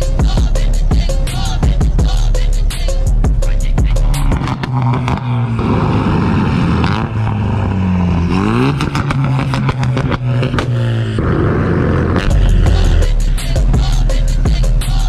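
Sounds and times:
car engine revving: 0.0 - 15.0
exhaust cracks and pops: 4.2 - 12.5.

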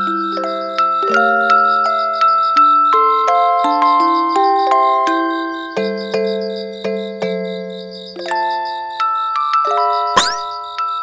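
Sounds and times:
glockenspiel-like mallet melody: 0.0 - 11.0.

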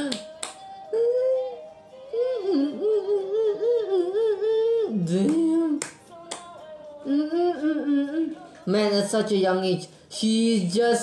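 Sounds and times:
girl yodeling: 0.0 - 5.8, 6.9 - 8.5.

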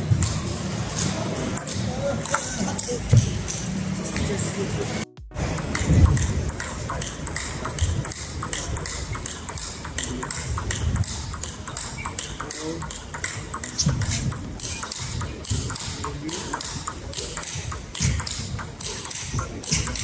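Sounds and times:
table tennis ball clicks: 5.5 - 20.0.

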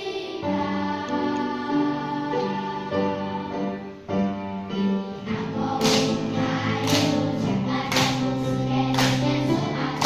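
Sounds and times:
children singing: 0.0 - 4.0, 5.1 - 10.0
backing music: 0.0 - 10.0
sharp claps: 6.8 - 7.2, 7.9 - 8.2, 8.9 - 9.2.

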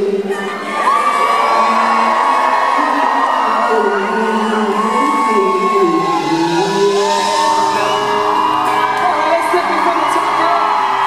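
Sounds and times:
amplified singing voice: 0.0 - 11.0
live band playing: 0.1 - 11.0.

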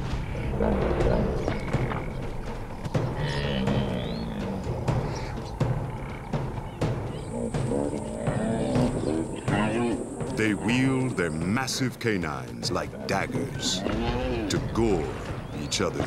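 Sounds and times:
hippos bellowing and grunting: 0.0 - 11.8, 12.5 - 16.0
documentary music: 0.0 - 16.0.

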